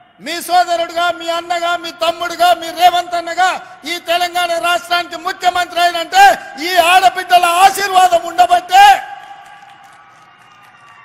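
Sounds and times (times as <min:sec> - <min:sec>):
man speaking over public address: 0:00.1 - 0:09.4.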